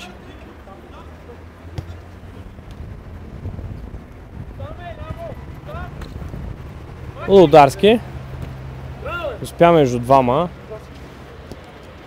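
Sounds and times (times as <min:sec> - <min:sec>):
distant voices calling out: 0:00.0 - 0:12.0
wind rumble on microphone: 0:01.8 - 0:08.4.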